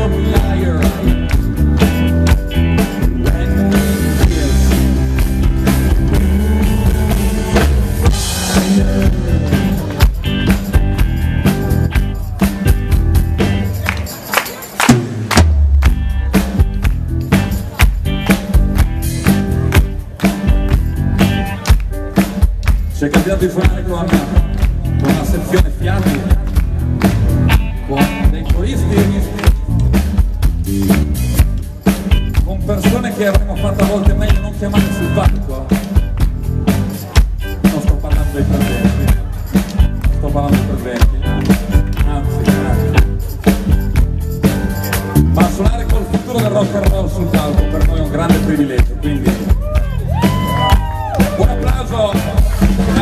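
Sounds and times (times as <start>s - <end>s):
bass guitar: 0.0s - 53.0s
drum kit beating: 0.0s - 53.0s
electric guitar: 0.0s - 53.0s
rock band playing live: 0.0s - 53.0s.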